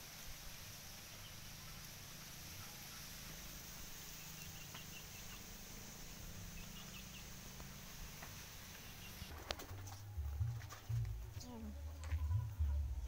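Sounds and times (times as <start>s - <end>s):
faint outdoor ambience: 0.0s - 13.0s
soft high bird chirps: 0.9s - 9.3s.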